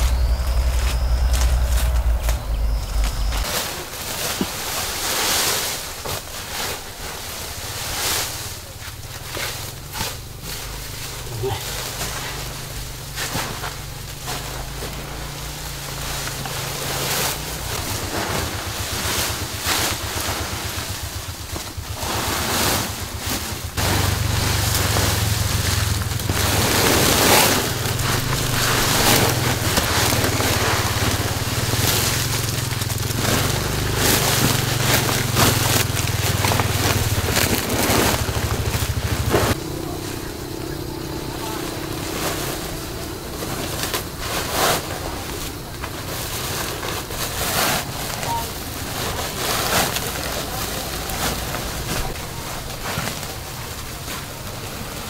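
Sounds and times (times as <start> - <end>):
steady low hum: 0.0 - 5.1, 7.0 - 55.0
plastic sack and leaves rustling: 0.0 - 55.0.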